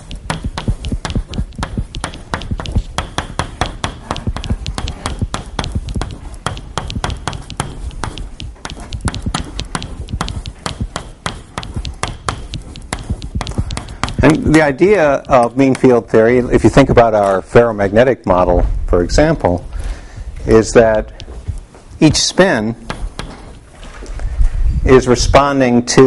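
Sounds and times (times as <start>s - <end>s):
chalk tapping on blackboard: 0.0s - 17.0s, 21.0s - 23.6s.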